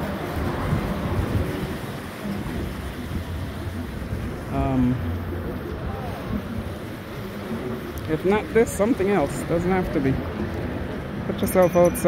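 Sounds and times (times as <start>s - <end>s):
sea washing against rocks: 0.0s - 9.5s
wind buffeting microphone: 0.0s - 11.4s.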